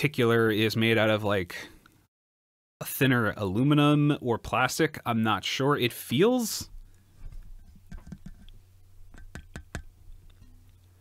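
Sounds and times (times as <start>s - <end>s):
fingers tapping microphone: 7.2s - 10.8s.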